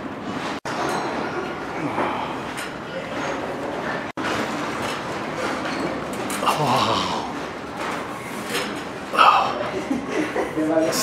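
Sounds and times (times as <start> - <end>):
indistinct voices: 1.7 - 3.9, 6.3 - 8.1, 9.1 - 9.9.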